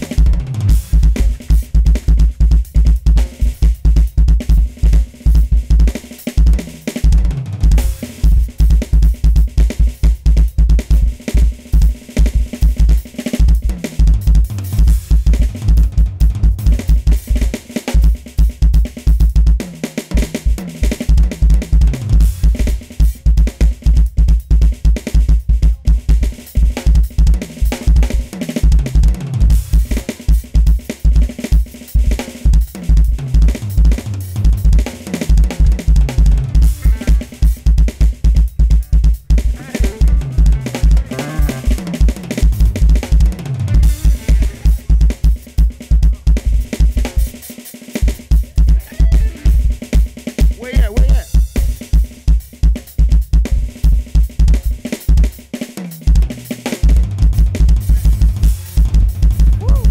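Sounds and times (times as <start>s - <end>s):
electronic drum kit solo: 0.0s - 59.9s.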